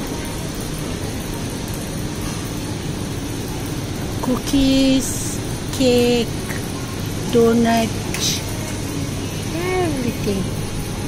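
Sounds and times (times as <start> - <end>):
shop interior rumble and hiss: 0.0 - 11.0.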